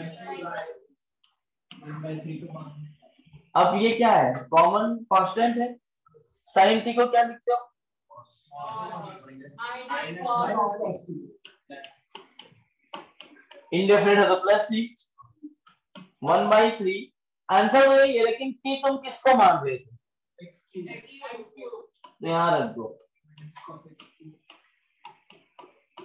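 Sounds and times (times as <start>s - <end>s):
man speaking: 3.5s - 5.8s, 6.4s - 7.6s, 8.6s - 11.8s, 13.7s - 15.2s, 16.2s - 19.9s, 22.2s - 23.0s
stylus tapping on tablet: 11.4s - 13.7s, 15.5s - 16.2s, 22.0s - 22.2s, 23.0s - 26.0s.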